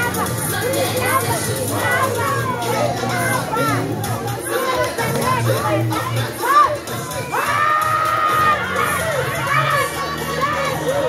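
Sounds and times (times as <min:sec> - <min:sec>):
children shouting and cheering: 0:00.0 - 0:11.0
long high-pitched shout: 0:06.3 - 0:11.0.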